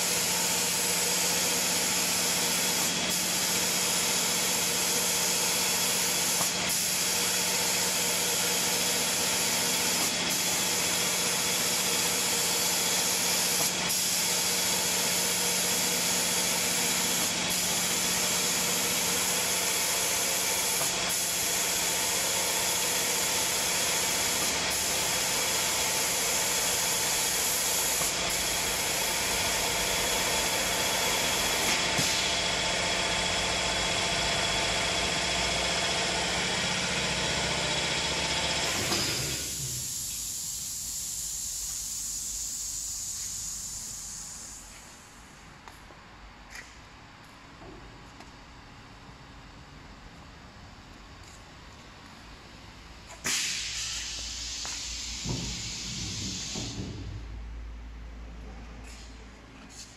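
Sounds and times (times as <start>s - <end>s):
spray guns hissing: 0.0s - 32.4s, 39.2s - 45.0s, 53.2s - 56.9s.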